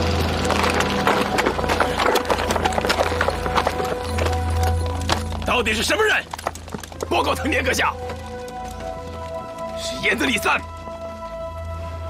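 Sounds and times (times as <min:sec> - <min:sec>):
background music with held notes: 0:00.0 - 0:12.0
horse hooves on hard street: 0:00.0 - 0:12.0.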